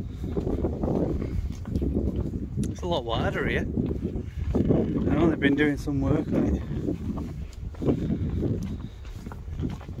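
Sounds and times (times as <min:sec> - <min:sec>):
footsteps on wooden boards: 0:00.0 - 0:10.0.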